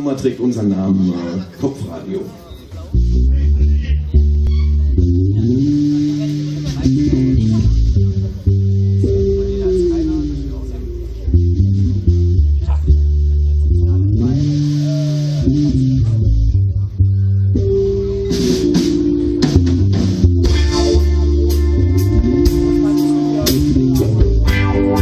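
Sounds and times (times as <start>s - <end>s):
live band playing: 0.0s - 25.0s
electric bass: 2.7s - 25.0s
electric guitars: 2.9s - 25.0s
drums and cymbals: 5.4s - 12.1s, 14.1s - 16.4s, 17.6s - 25.0s.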